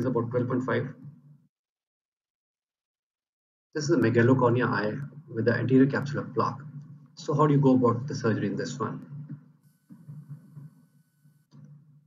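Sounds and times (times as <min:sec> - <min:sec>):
low hum: 0:03.8 - 0:12.0.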